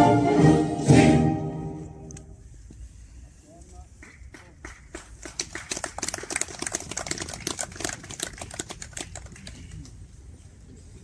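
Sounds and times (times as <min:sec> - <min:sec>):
crowd applauding: 0:04.4 - 0:10.0.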